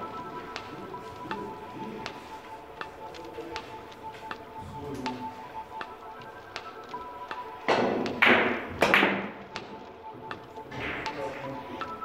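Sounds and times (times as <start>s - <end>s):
billiard balls knocking: 7.6s - 9.7s.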